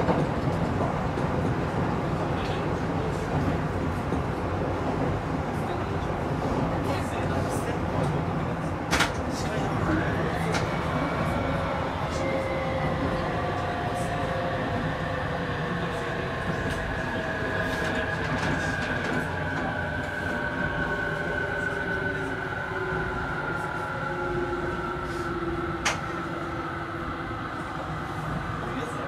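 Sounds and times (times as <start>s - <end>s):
train rumbling on rails: 0.0s - 29.0s.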